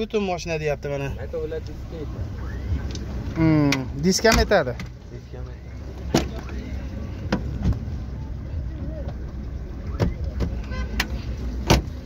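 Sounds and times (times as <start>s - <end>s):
low steady rumble: 0.0s - 12.0s
car door handle and latch clicks: 3.7s - 5.0s.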